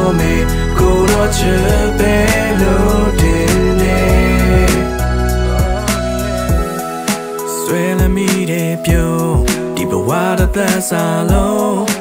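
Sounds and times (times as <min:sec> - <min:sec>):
backing track with beat and bass: 0:00.0 - 0:12.0
man singing: 0:00.0 - 0:12.0.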